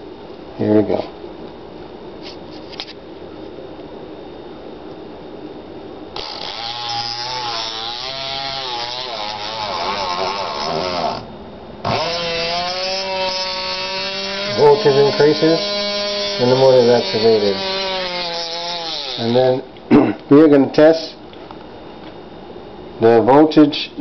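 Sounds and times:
small electric motor whining: 6.2s - 19.4s.

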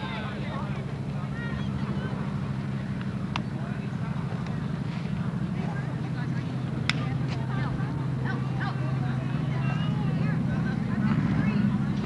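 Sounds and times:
distant voices calling and chattering: 0.0s - 12.0s.

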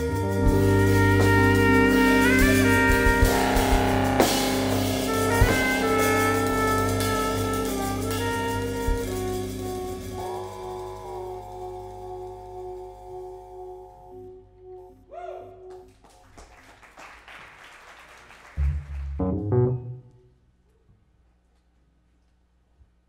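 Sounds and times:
drum and cymbal hits: 0.0s - 11.8s
electric bass: 0.0s - 16.0s, 18.6s - 20.4s
saxophones: 0.0s - 16.0s
keyboard: 0.0s - 16.4s.

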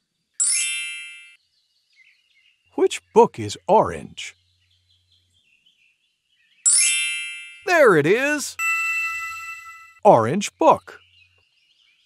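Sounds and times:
bright chime: 8.6s - 10.0s.

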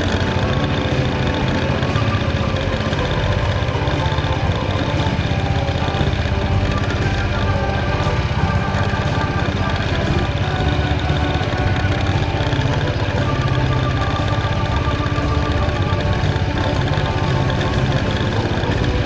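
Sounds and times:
background music: 0.0s - 19.0s
tractor engine running: 0.0s - 19.0s.

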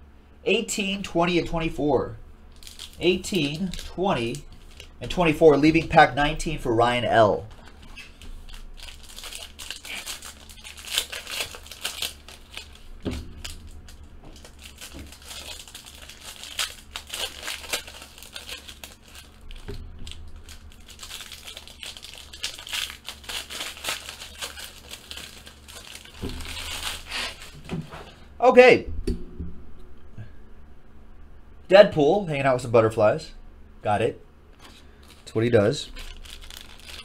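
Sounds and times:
foil wrapper crinkling and tearing: 2.5s - 6.2s, 7.5s - 27.7s, 34.6s - 37.0s.

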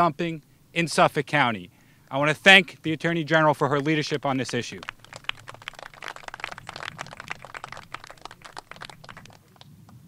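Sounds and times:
crowd applause: 4.5s - 9.7s.

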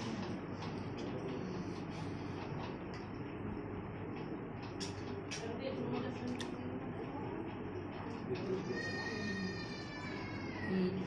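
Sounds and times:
newborn baby crying: 8.7s - 11.0s.

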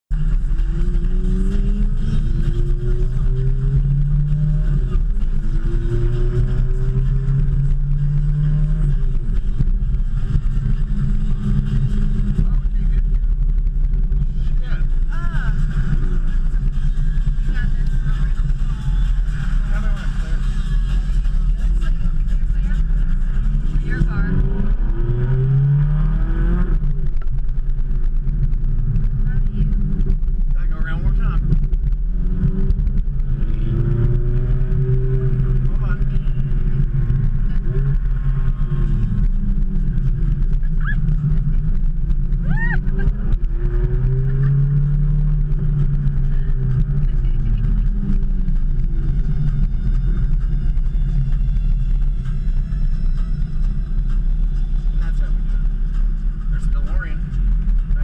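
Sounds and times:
road rumble: 0.0s - 58.0s
car engine accelerating: 0.1s - 58.0s.

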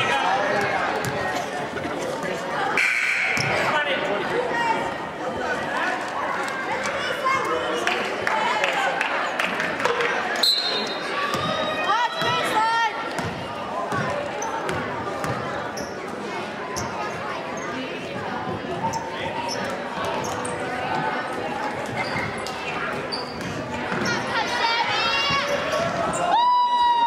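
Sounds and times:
players and spectators shouting: 10.6s - 13.1s, 24.0s - 27.0s.

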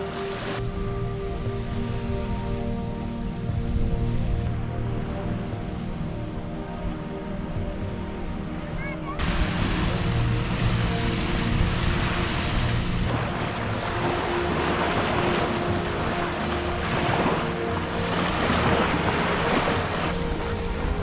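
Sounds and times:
small waves breaking on shore: 0.0s - 0.6s, 8.4s - 21.0s
soft background music: 0.0s - 21.0s
wind on microphone: 0.0s - 21.0s.

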